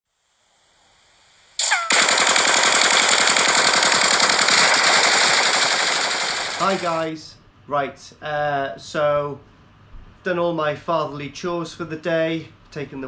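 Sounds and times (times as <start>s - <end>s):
falling whistle glide: 1.4s - 2.0s
machine-gun fire: 1.6s - 7.2s.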